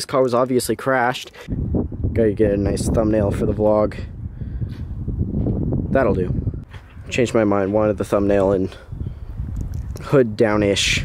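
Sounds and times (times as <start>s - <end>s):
wind rumble on microphone: 1.5s - 11.0s.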